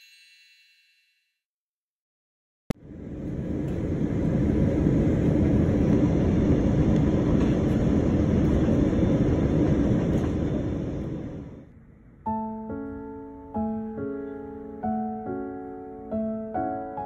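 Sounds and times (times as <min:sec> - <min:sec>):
airliner cabin engine rush: 0:02.8 - 0:12.0.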